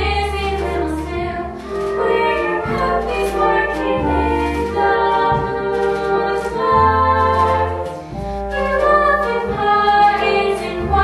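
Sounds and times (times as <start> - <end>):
chorus singing in harmony: 0.0 - 11.0
pit orchestra: 0.0 - 11.0.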